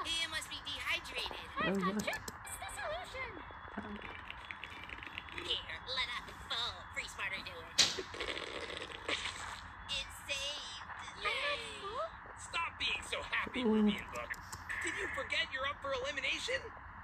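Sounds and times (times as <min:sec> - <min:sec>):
cartoon character voices: 0:00.8 - 0:04.0, 0:09.9 - 0:16.6
sharp slap-like hit: 0:07.8 - 0:08.2.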